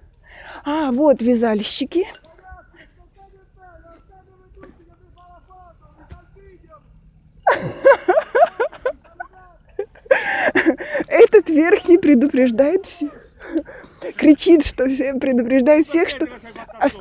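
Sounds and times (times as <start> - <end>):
faint distant voices: 2.0 - 7.1
man shouting: 2.3 - 6.9, 12.8 - 13.3.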